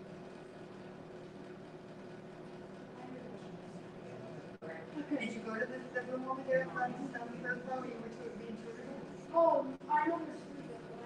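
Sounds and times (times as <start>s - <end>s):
murmur of voices: 2.9s - 11.0s.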